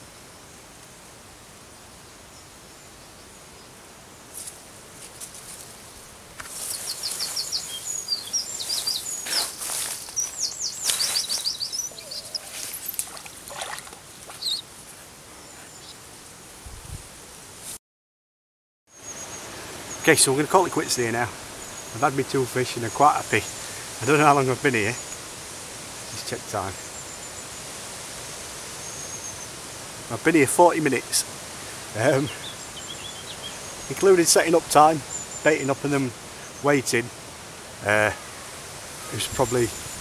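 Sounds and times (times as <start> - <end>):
faint outdoor background: 0.0 - 17.8, 18.9 - 40.0
songbird trilling: 6.5 - 14.7, 32.1 - 36.7.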